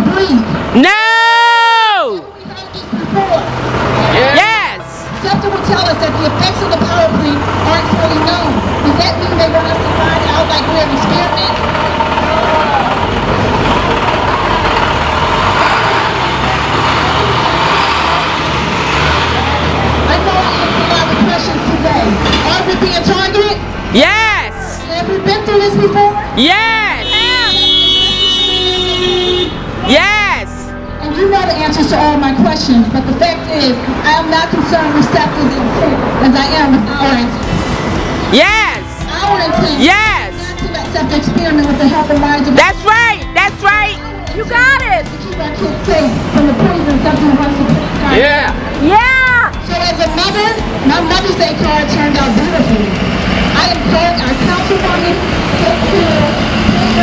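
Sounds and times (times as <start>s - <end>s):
crowd shout: 0.8s - 2.2s, 24.0s - 24.9s, 26.2s - 28.2s
truck engine driving past: 2.2s - 29.9s, 30.5s - 43.4s, 45.0s - 57.0s
car horn honking: 26.4s - 31.7s
voices from a loudspeaker: 53.6s - 57.0s.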